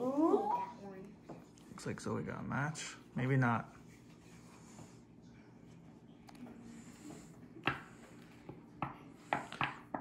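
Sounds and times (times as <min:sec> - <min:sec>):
playing cards tapping and rustling: 0:07.6 - 0:10.0.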